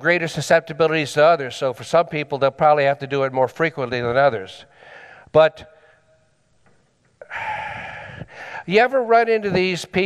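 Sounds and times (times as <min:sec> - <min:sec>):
man breathing in: 0:04.7 - 0:06.1, 0:07.2 - 0:08.7.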